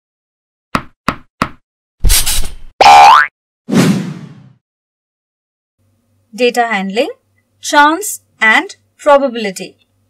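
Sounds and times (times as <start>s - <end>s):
cartoon boing rising in pitch: 2.8s - 3.3s.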